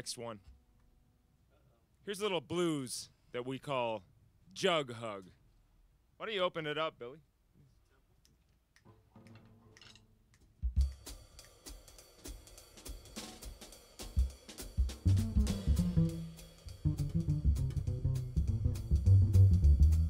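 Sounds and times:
drum kit and cymbals: 0:10.5 - 0:20.0
plucked upright bass: 0:15.1 - 0:20.0.

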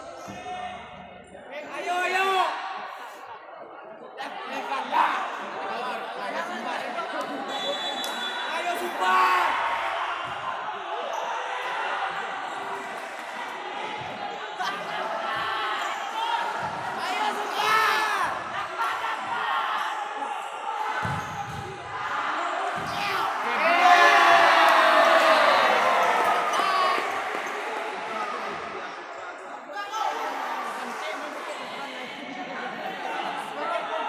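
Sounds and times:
crowd chatter and shouts: 0:00.0 - 0:34.0
loud shout: 0:08.4 - 0:12.2, 0:14.6 - 0:28.6.

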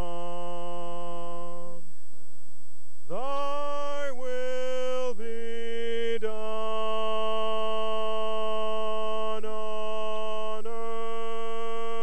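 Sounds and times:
man singing a long note: 0:00.0 - 0:01.9, 0:03.1 - 0:12.0.

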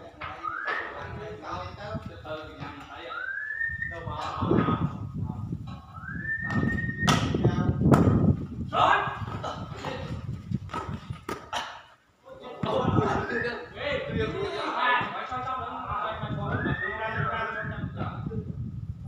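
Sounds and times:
volleyball hits: 0:06.4 - 0:08.4, 0:09.2 - 0:11.8.

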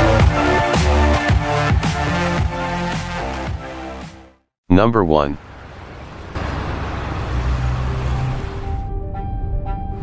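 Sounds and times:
tyre and road noise: 0:05.4 - 0:09.0.

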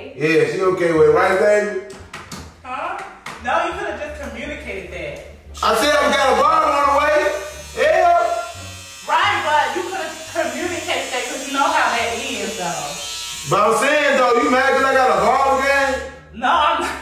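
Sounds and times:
background music: 0:00.0 - 0:17.0
electric hair clippers buzzing: 0:05.5 - 0:16.1.

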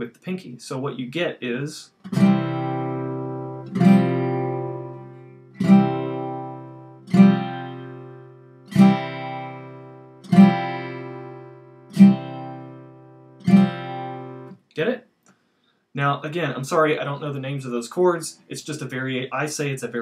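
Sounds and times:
acoustic guitar strums: 0:01.9 - 0:14.7.

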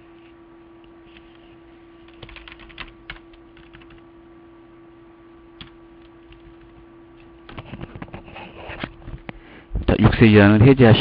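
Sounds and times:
steady low hum: 0:00.0 - 0:11.0
keyboard typing: 0:02.1 - 0:04.0, 0:05.6 - 0:08.2.

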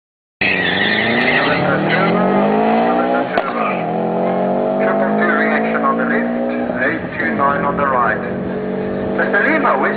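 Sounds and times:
car engines revving at full throttle: 0:00.4 - 0:09.9.

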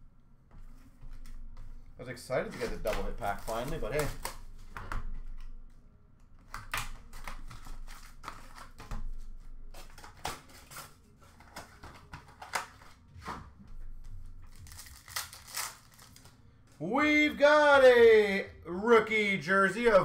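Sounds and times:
cards clicking and rustling: 0:02.5 - 0:05.6, 0:06.3 - 0:16.4
foil wrappers crinkling and tearing: 0:02.6 - 0:04.6, 0:06.6 - 0:13.1, 0:14.4 - 0:16.4.

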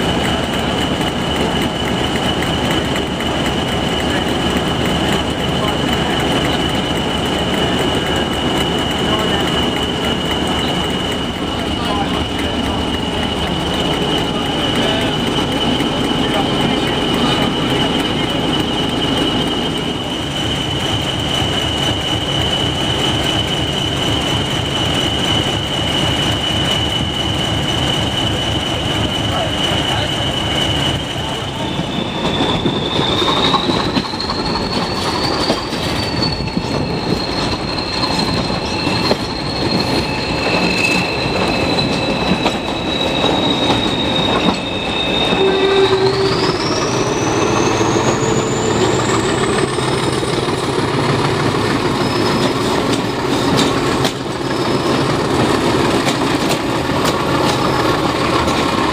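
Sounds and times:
train rumbling and rattling: 0:00.0 - 0:58.9
train wheels squealing: 0:00.0 - 0:58.9.

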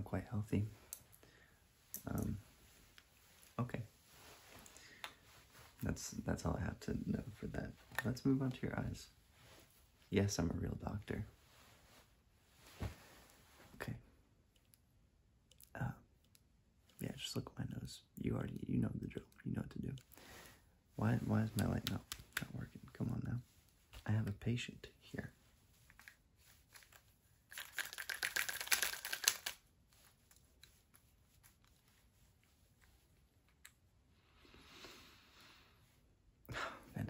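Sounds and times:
person speaking: 0:00.0 - 0:01.0, 0:01.9 - 0:02.5, 0:05.7 - 0:09.2, 0:21.0 - 0:25.4.

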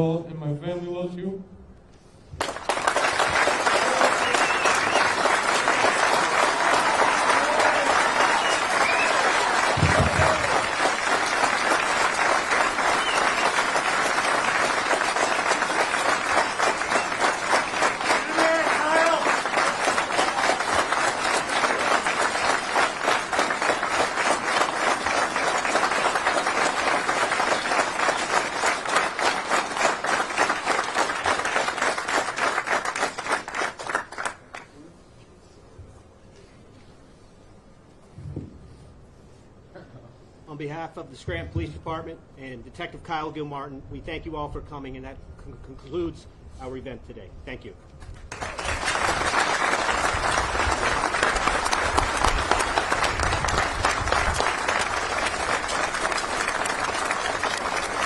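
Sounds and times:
crowd applauding: 0:02.4 - 0:34.7, 0:48.1 - 0:58.0
people cheering and shouting: 0:06.2 - 0:10.8, 0:18.2 - 0:19.3.

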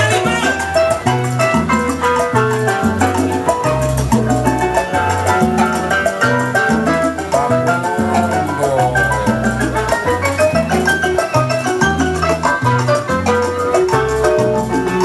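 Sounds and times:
salsa music: 0:00.0 - 0:15.0.

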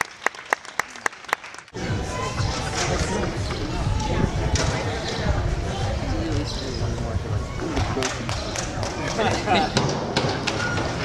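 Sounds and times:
dense background noise: 0:01.7 - 0:11.0
music: 0:01.8 - 0:11.0
voices: 0:01.8 - 0:11.0.

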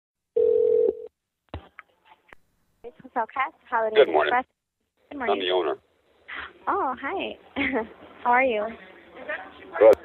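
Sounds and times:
telephone line tone: 0:00.4 - 0:01.1.

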